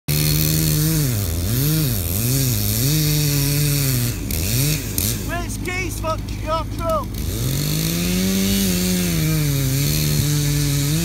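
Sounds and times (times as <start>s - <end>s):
chainsaw cutting wood: 0.1s - 11.0s.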